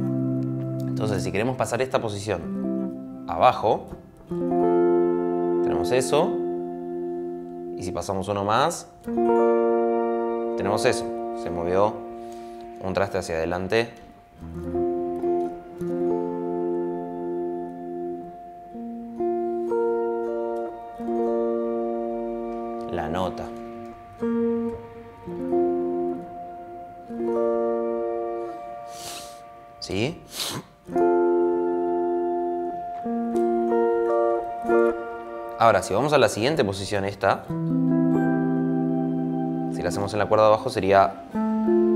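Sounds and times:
clean electric guitar picking chords: 0:00.0 - 0:41.9.

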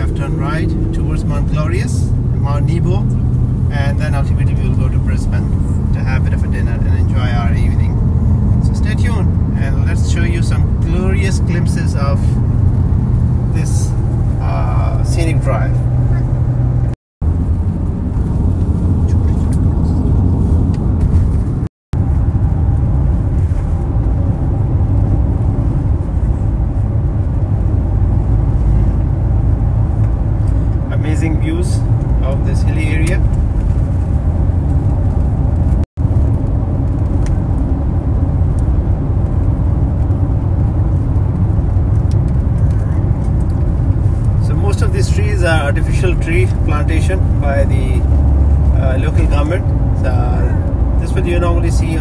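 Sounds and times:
car cabin road and engine rumble: 0:00.0 - 0:52.0.

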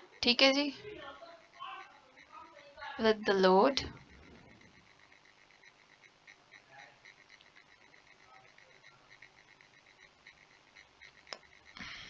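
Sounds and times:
soft regular chirping: 0:00.0 - 0:12.0.

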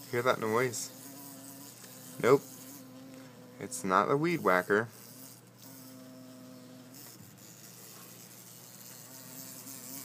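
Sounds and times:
large bee buzzing: 0:00.0 - 0:10.0.

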